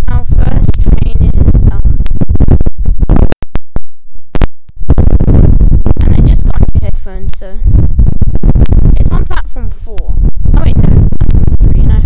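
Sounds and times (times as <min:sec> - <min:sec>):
microphone crackling and scratching: 0:00.0 - 0:12.0.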